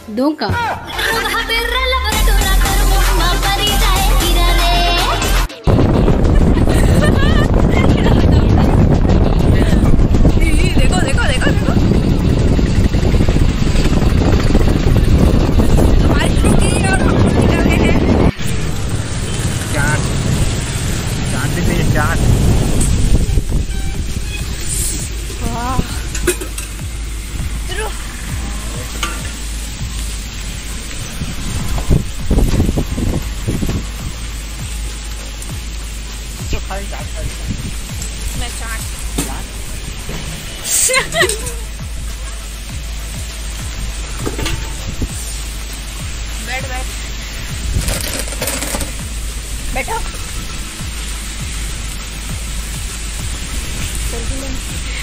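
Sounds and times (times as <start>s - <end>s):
voices: 0.0s - 12.5s, 15.8s - 20.5s, 27.5s - 29.5s, 36.4s - 39.6s, 49.6s - 50.2s
steady rain: 1.0s - 55.0s
motorbike road noise: 5.1s - 55.0s
wind buffeting microphone: 5.7s - 28.9s, 29.8s - 34.2s, 37.1s - 39.0s, 44.6s - 45.2s, 47.4s - 48.0s
low rumble: 5.7s - 55.0s.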